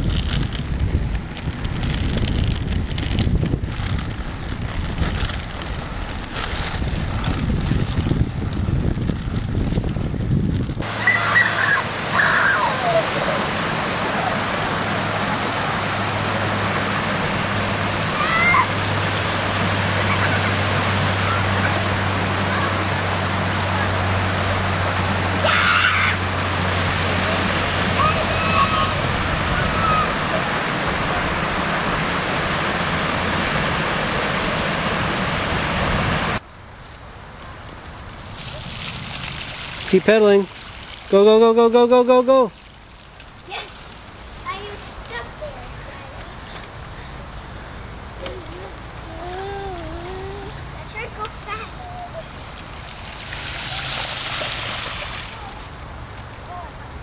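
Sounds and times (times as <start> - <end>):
wind buffeting microphone: 0.0 - 11.2, 26.2 - 41.1
bike wheels splashing water: 0.0 - 56.8
water rushing over weir: 10.8 - 57.0.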